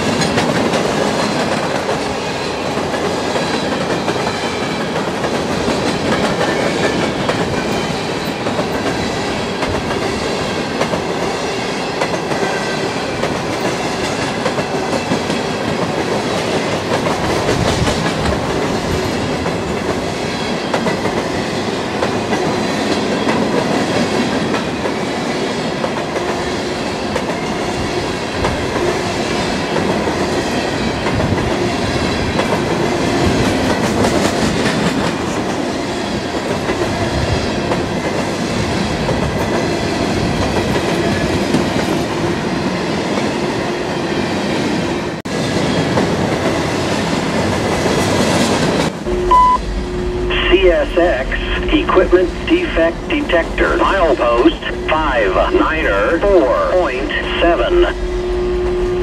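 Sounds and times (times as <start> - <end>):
wheels clickety-clack on rail joints: 0.0 - 43.6, 44.5 - 49.0
freight train wheels rumbling: 0.0 - 59.0.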